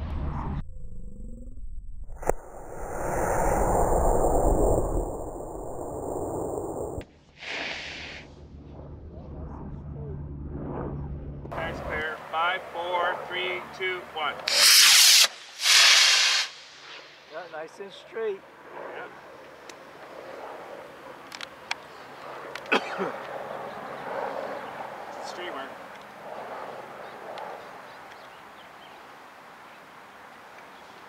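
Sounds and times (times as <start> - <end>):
loud rushes of noise: 2.1 - 7.0.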